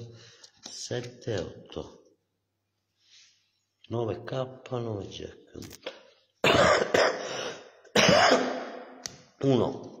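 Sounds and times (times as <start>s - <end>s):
person coughing: 6.4s - 8.9s.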